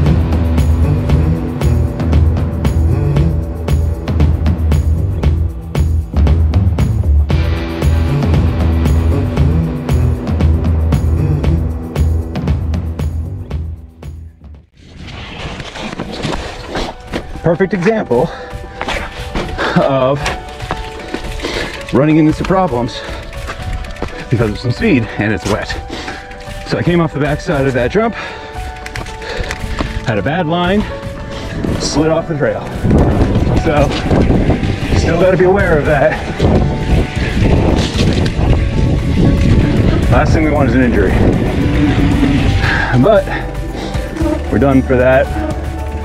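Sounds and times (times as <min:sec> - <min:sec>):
background music: 0:00.0 - 0:14.7, 0:16.1 - 0:46.0
bike rattling: 0:14.7 - 0:46.0
bike tyres skidding on dirt: 0:14.8 - 0:17.1
bike tyre rumble on dirt: 0:29.7 - 0:43.8
wind on microphone: 0:32.6 - 0:43.0.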